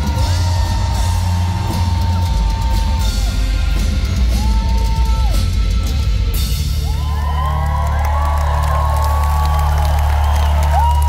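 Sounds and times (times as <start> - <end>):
crowd cheering and whooping: 0.0 - 11.0.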